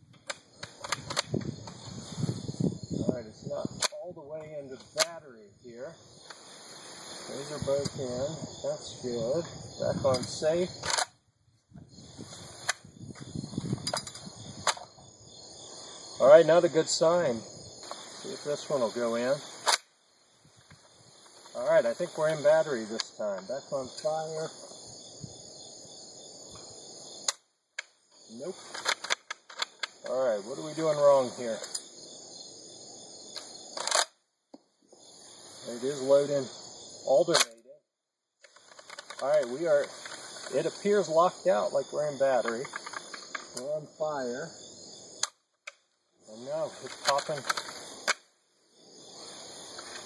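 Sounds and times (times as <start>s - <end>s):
insects chirping: 0.0s - 50.0s.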